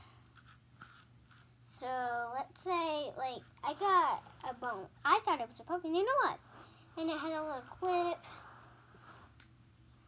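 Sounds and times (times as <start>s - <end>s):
low steady hum: 0.0s - 10.0s
girl's voice: 1.7s - 8.3s.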